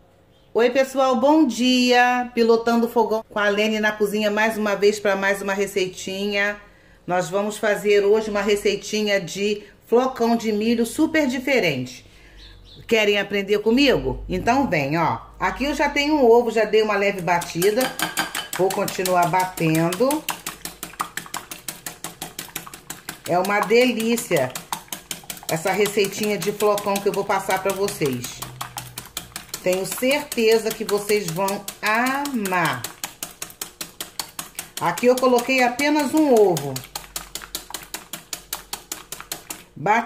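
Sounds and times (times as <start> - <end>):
whisk beating egg in glass bowl: 15.9 - 39.8.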